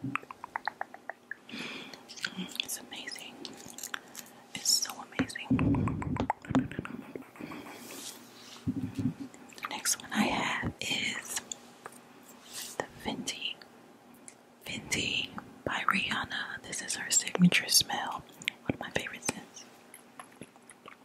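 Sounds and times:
soft whispering: 2.1 - 3.6, 4.5 - 11.5, 12.5 - 13.6, 14.6 - 19.7.

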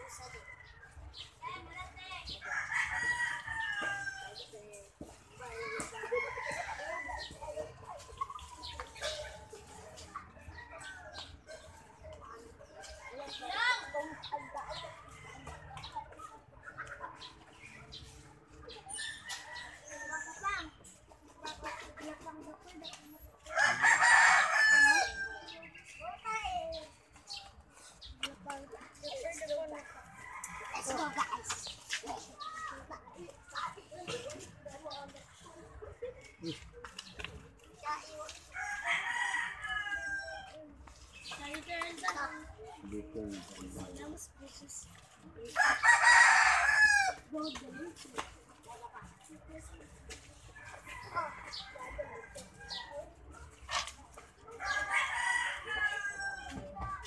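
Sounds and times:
people talking: 0.0 - 38.4, 47.1 - 57.0
chickens: 0.0 - 41.4, 44.8 - 57.0
rooster crowing: 23.5 - 25.3.

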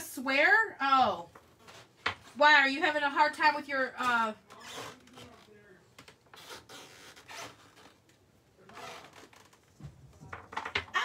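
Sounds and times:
scratching and rustling materials: 1.2 - 2.5, 4.5 - 10.8.

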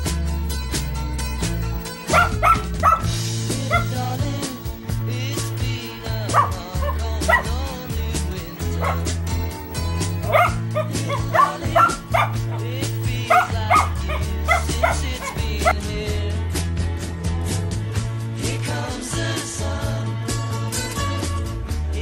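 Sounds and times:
background music with bass: 0.0 - 22.0
puppy yipping and barking: 2.1 - 3.1, 3.7 - 4.1, 6.3 - 7.8, 8.6 - 9.2, 10.2 - 15.8.

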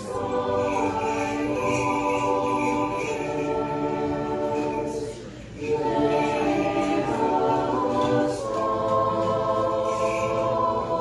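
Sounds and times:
choir singing a cappella hymn: 0.0 - 11.0.

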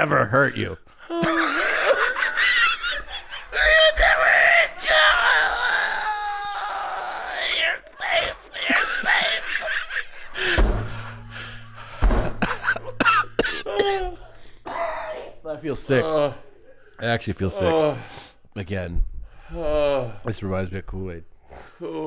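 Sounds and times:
men laughing helplessly: 1.1 - 4.2, 8.0 - 14.5
coughing: 7.2 - 10.6, 11.4 - 16.6
heavy thumps on desk: 10.4 - 11.2, 12.0 - 12.8.

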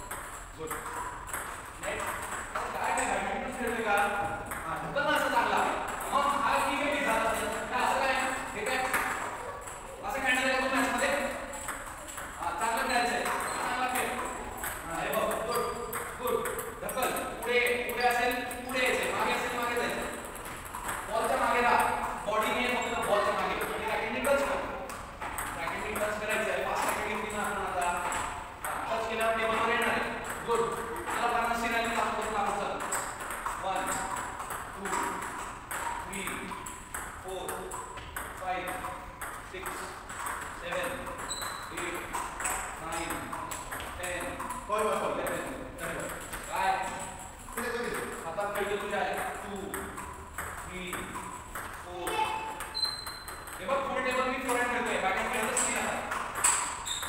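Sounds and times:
table tennis balls clicking: 0.0 - 57.0.

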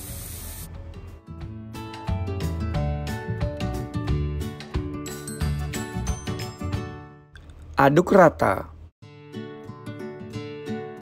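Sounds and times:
oil sizzling in a wok: 0.0 - 0.7
background music: 0.0 - 7.3.

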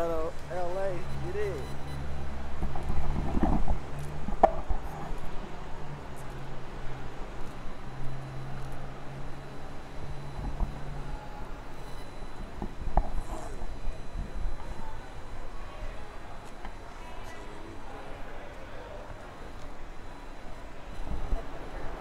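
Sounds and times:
traffic engine hum: 0.0 - 22.0.

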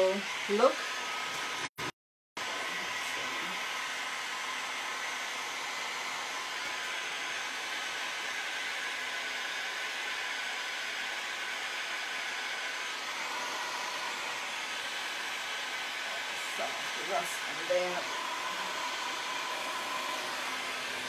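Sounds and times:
heat gun blowing: 0.0 - 1.7, 2.4 - 21.0.

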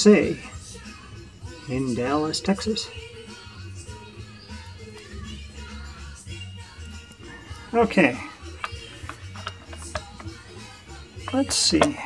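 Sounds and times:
plastic clicks and rubbing: 8.6 - 10.4.

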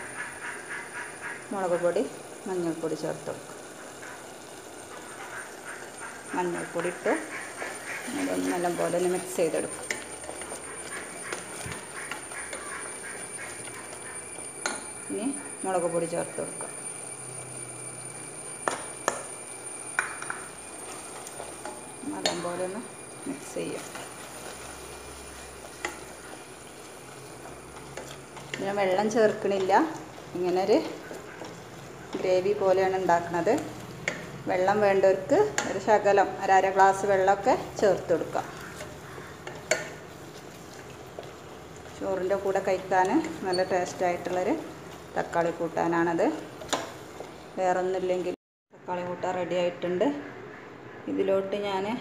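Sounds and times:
masala sizzling in oil: 0.0 - 48.4
wooden spatula scraping steel pot: 4.9 - 17.5, 20.0 - 47.4
person speaking: 8.0 - 9.8.

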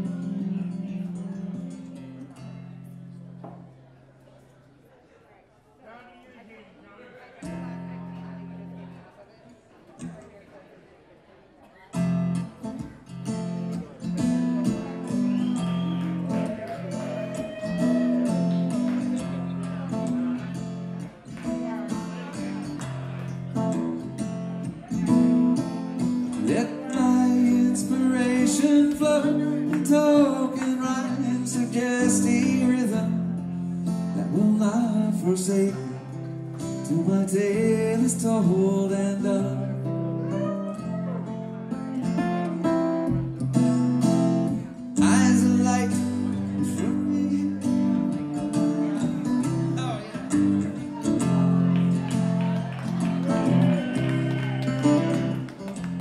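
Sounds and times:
electric guitar playing: 12.0 - 34.7, 38.2 - 56.0
man singing: 26.3 - 40.9, 44.6 - 51.2.

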